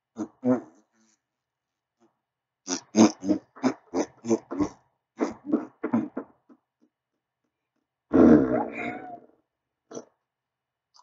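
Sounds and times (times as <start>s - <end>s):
person making growly noise: 8.1s - 9.3s.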